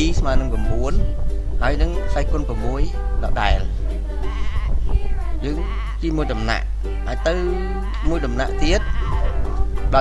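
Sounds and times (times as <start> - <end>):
steady low hum: 0.0 - 10.0
person chanting wavering syllables: 0.4 - 10.0.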